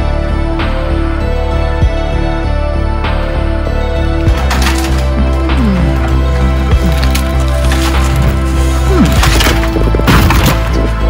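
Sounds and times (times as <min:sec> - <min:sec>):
background music: 0:00.0 - 0:11.0
wood cracking and splintering: 0:04.2 - 0:11.0.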